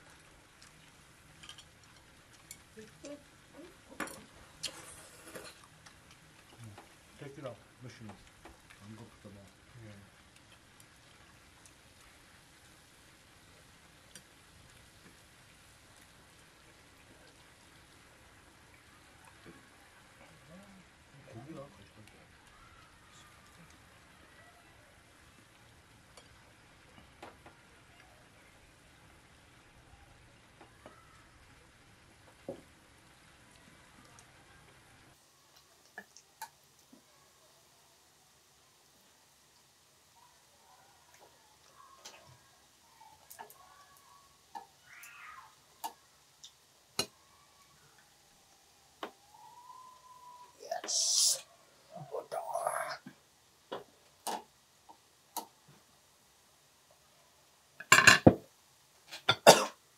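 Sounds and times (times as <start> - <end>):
meat sizzling in a grill pan: 0.0 - 33.9, 50.4 - 53.0, 57.8 - 59.6
tongs and chopsticks clicking: 55.3 - 55.5.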